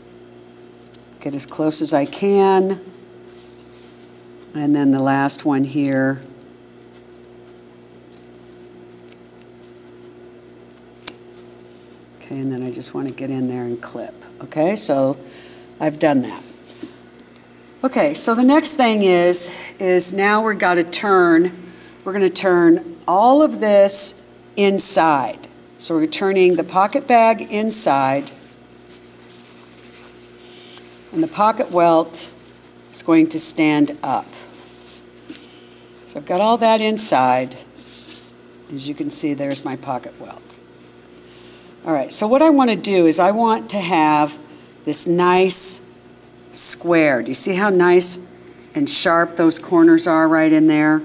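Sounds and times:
steady low hum: 0.0 - 51.0
fabric rustling: 2.8 - 4.5, 28.1 - 33.0, 34.2 - 36.2, 37.7 - 38.5.

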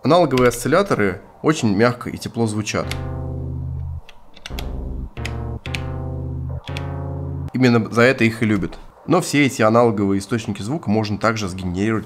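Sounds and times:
sequencer pad clicks: 0.3 - 1.2, 2.8 - 7.5, 8.4 - 8.9
synthesizer low held notes: 0.4 - 1.4, 2.8 - 9.0.

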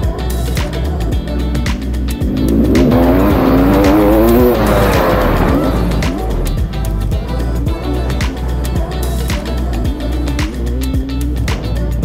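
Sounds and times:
background music with a beat: 0.0 - 12.0
motorbike engine revving: 1.6 - 7.2.

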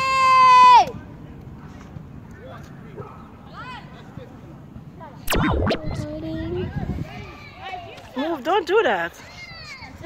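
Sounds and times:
loud burst of noise: 5.3 - 6.1.

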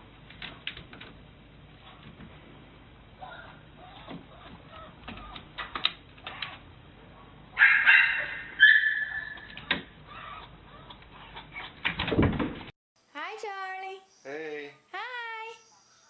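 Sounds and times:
dog whining: 7.6 - 11.8.

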